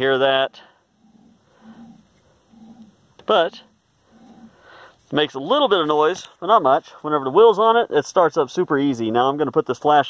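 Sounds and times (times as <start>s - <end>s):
faint low rumbling: 0.0s - 7.4s.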